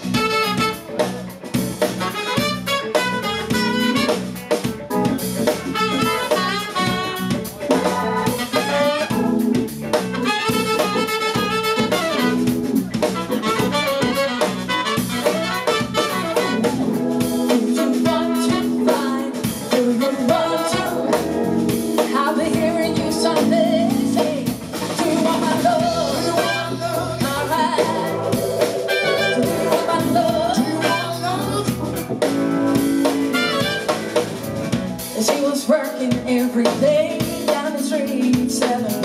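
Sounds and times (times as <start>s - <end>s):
live soul band playing: 0.0s - 39.0s.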